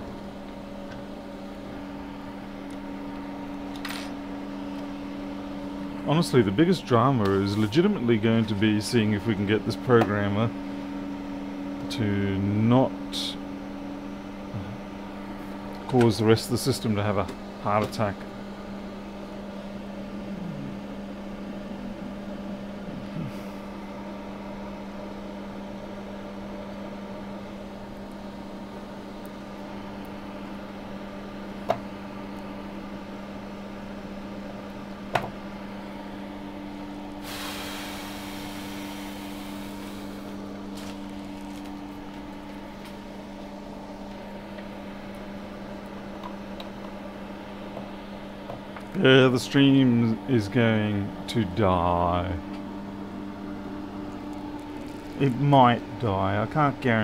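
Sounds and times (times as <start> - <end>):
fan humming: 0.0 - 57.0
hiss: 37.2 - 40.3.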